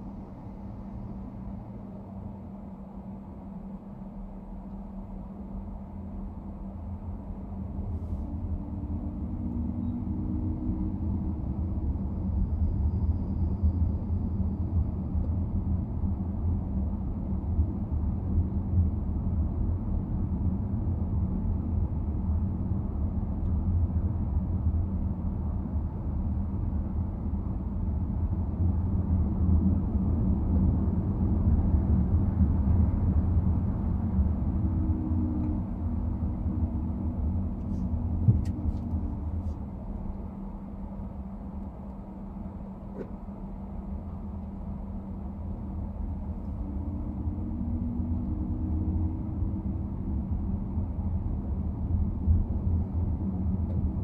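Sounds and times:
car road and engine rumble: 0:00.0 - 0:54.0.

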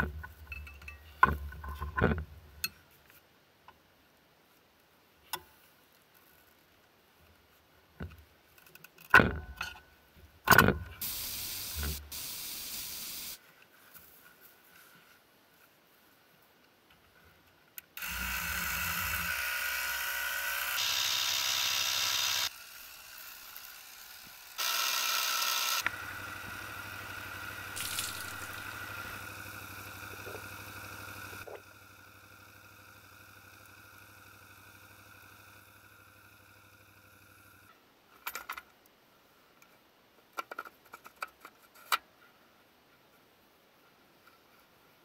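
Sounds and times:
electric tyre pump whirring: 0:11.0 - 0:13.4, 0:18.0 - 0:37.7.

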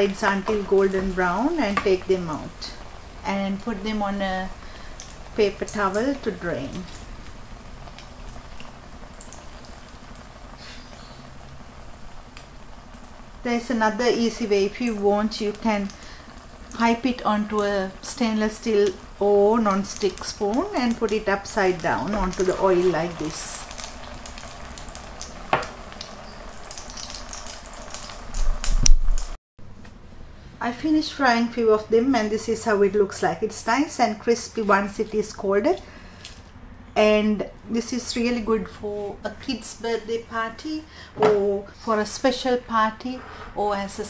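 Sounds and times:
food sizzling in hot oil: 0:00.0 - 0:29.4
oil popping and crackling: 0:00.0 - 0:29.4.

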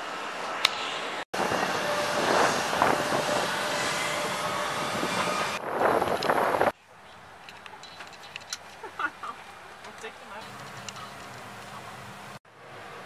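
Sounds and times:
bus vehicle noise: 0:00.0 - 0:13.0.

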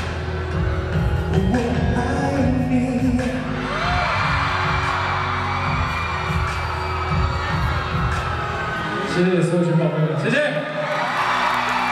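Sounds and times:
pop ballad over sound system: 0:00.0 - 0:09.6
crowd noise: 0:00.0 - 0:11.9.

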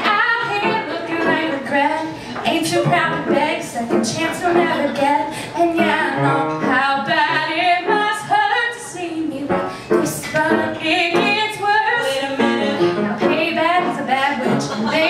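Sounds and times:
women singing into microphones: 0:00.0 - 0:15.0.

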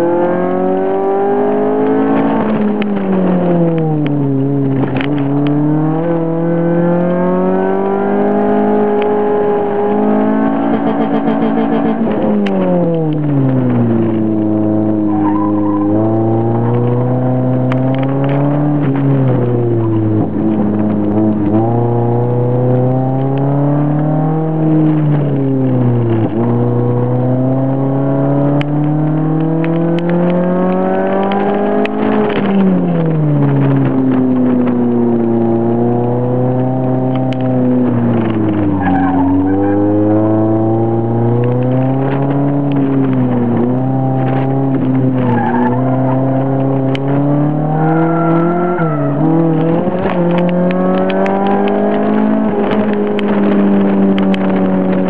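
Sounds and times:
car engine revving from inside: 0:04.7 - 0:32.9, 0:33.5 - 0:55.0.

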